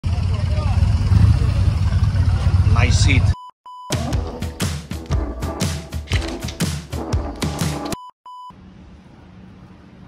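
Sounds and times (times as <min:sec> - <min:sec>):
motorcycle engine idling: 0:00.0 - 0:02.8
man talking: 0:02.7 - 0:03.4.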